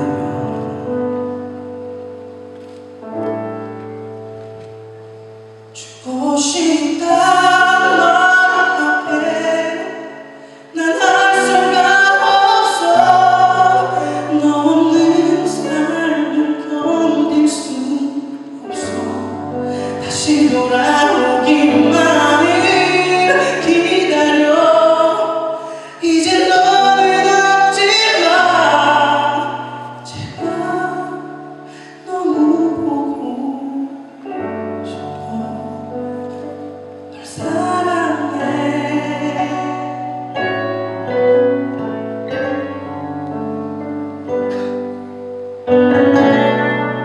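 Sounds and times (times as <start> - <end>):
man singing a ballad: 0.0 - 1.6, 5.7 - 45.0
held accompaniment chords: 0.0 - 47.0.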